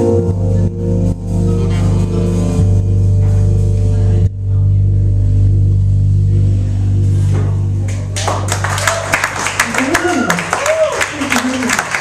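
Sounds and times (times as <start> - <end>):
band holding low chord: 0.0 - 10.1
audience clapping: 7.9 - 12.0.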